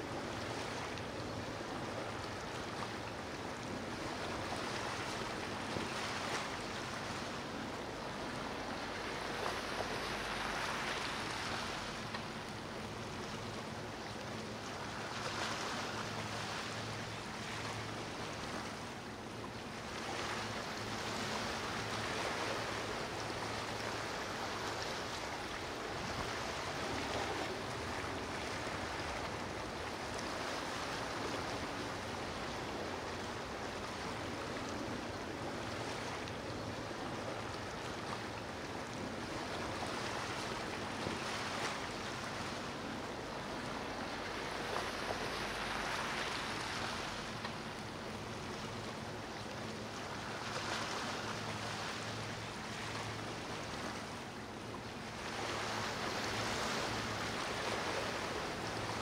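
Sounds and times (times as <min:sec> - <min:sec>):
water rushing and surf: 0:00.0 - 0:59.0.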